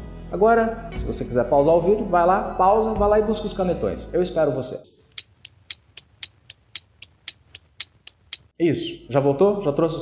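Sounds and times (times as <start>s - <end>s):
clock ticking: 5.1s - 8.5s.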